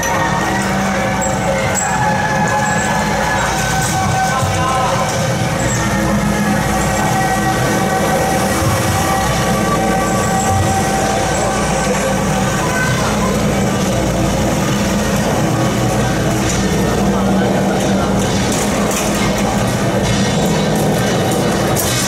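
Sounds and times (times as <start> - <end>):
steady crowd rumble: 0.0 - 22.0
voices: 0.0 - 22.0.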